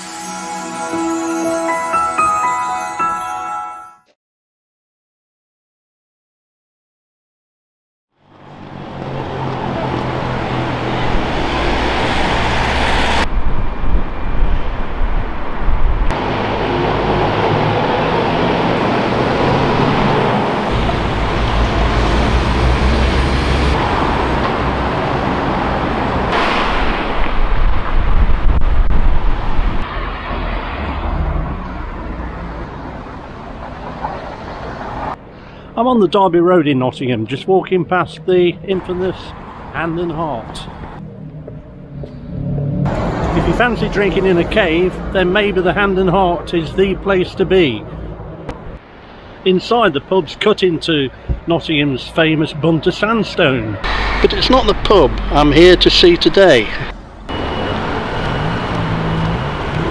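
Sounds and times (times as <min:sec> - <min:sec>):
cars and bus passing: 0:00.0 - 0:03.8, 0:08.2 - 0:59.9
engine rumble and tyre noise: 0:08.2 - 0:59.9.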